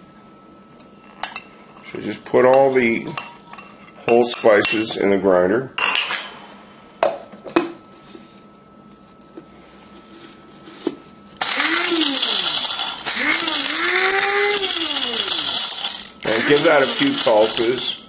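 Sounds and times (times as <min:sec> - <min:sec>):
coffee grinder motor: 0:11.4 - 0:18.0.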